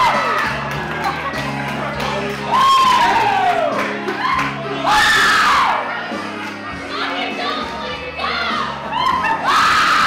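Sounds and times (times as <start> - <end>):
background music: 0.0 - 10.0
women cheering and shouting: 2.5 - 5.9, 6.9 - 10.0.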